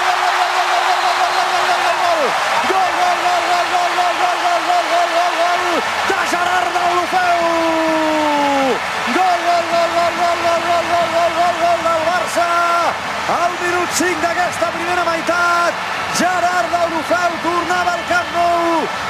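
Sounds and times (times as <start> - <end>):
stadium crowd noise: 0.0 - 19.0
man shouting commentary: 1.2 - 18.8.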